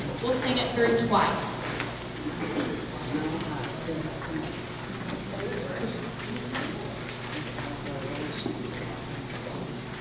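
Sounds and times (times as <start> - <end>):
faint murmured voices: 0.0 - 10.0.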